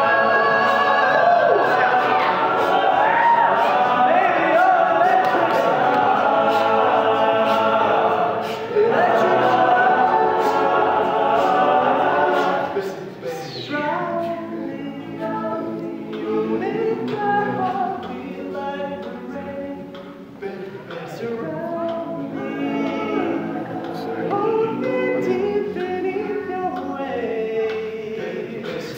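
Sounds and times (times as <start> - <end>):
male a cappella group singing: 0.0 - 28.9
soloist singing: 0.0 - 28.9.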